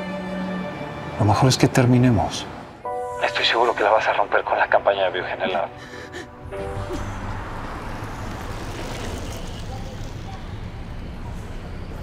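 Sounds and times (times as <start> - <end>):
street ambience: 0.0 - 12.0
car driving past: 6.4 - 12.0.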